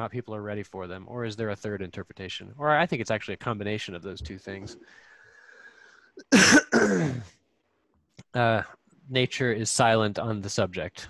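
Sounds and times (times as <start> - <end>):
man coughing: 6.2 - 7.3.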